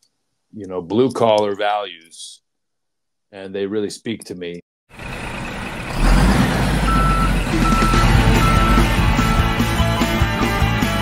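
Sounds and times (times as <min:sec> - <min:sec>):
truck reversing beeper: 0:04.9 - 0:10.0
loud rock music: 0:07.4 - 0:11.0.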